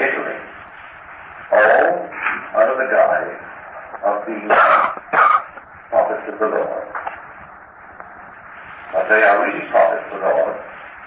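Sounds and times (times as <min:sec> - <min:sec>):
recording hiss: 0:00.0 - 0:11.0
man speaking: 0:01.5 - 0:05.2, 0:05.9 - 0:07.0, 0:08.9 - 0:10.7.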